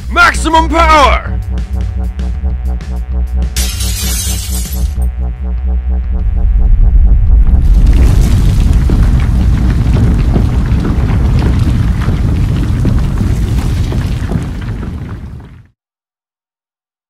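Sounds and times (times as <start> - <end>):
music: 0.0 - 7.7
building collapse rumble with debris: 7.2 - 15.8.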